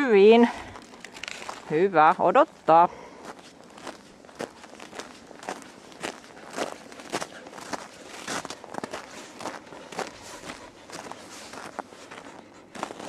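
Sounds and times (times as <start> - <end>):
footsteps crunching through snow: 0.7 - 13.0.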